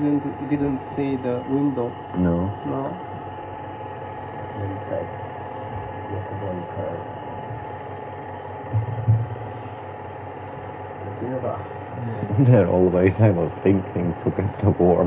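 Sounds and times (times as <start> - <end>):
recording hum and hiss: 0.0 - 15.0
low bump: 8.7 - 9.4.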